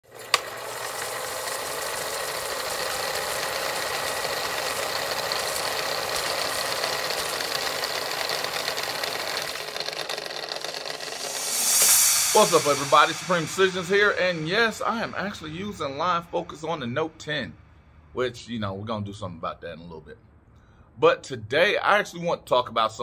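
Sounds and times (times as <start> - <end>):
film projector clatter: 0.0 - 11.6
rising whoosh: 10.8 - 17.3.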